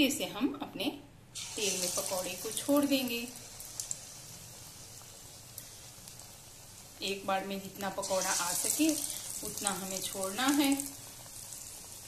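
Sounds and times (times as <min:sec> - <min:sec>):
food deep-frying in oil: 0:01.3 - 0:12.0.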